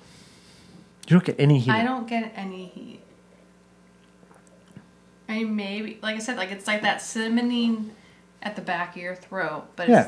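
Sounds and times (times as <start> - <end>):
man sipping and swallowing: 4.0 - 4.9.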